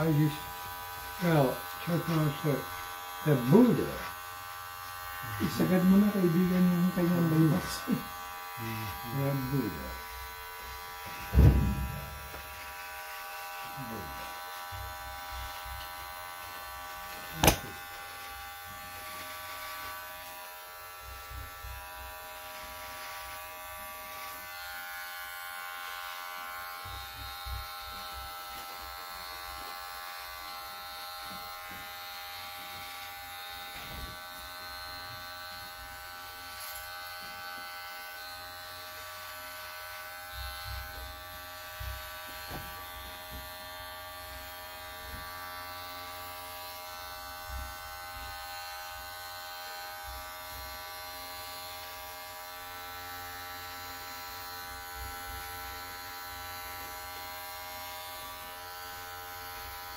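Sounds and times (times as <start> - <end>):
electric hair clipper buzzing: 0.0 - 59.9.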